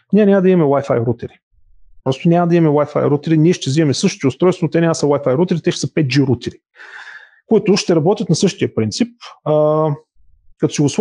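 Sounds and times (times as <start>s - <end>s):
man talking: 0.1s - 1.4s, 2.0s - 10.0s, 10.6s - 11.0s
man breathing in: 6.8s - 7.5s.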